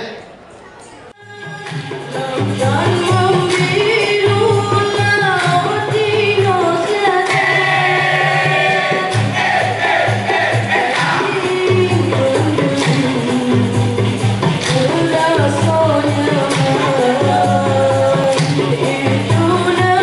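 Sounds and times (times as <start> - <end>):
pulsing percussion beat: 1.3 - 20.0
troupe singing in chorus: 3.2 - 20.0.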